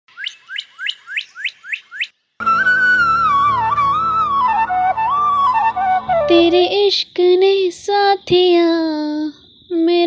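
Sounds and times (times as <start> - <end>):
bird singing whistled notes: 0.1 - 6.8.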